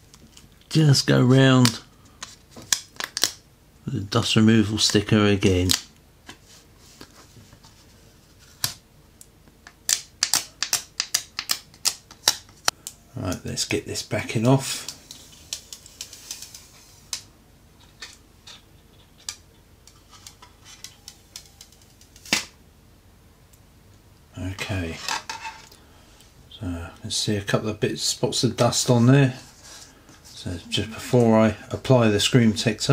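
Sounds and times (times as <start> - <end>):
man's voice: 30.4 - 32.9.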